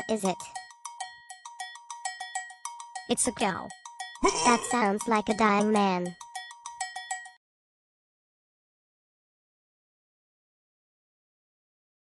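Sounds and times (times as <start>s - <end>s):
bright bell-like ticks: 0.0s - 7.4s.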